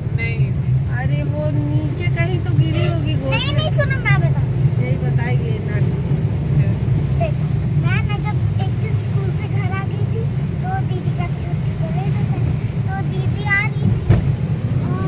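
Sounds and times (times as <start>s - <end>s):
tyre and engine rumble: 0.0s - 15.0s.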